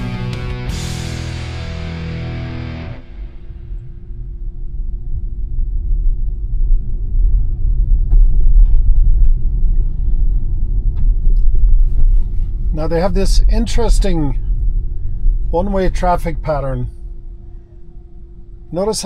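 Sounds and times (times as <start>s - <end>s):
road and tyre rumble: 0.0s - 17.3s
faint steady hum: 0.0s - 19.0s.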